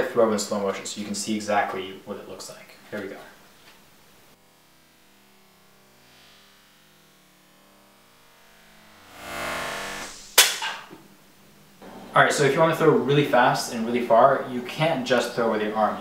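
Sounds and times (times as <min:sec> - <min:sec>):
small snap: 0:10.3 - 0:10.9.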